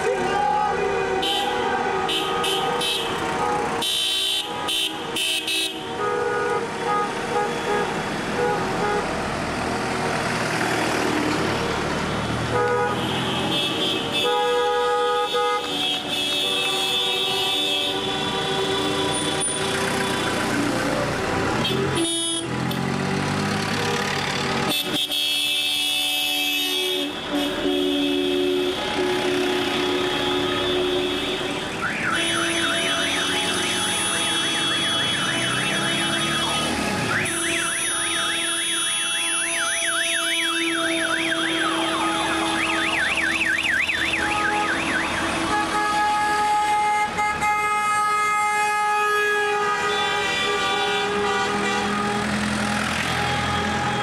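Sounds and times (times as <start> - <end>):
car horns honking: 0.0 - 9.3, 12.1 - 20.6, 21.5 - 22.9, 24.6 - 54.0
electronic siren horn warbling: 31.6 - 46.8.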